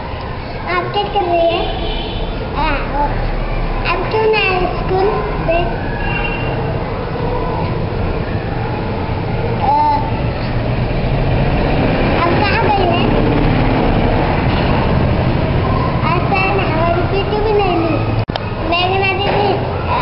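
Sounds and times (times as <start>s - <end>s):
children's voices chattering: 0.0s - 20.0s.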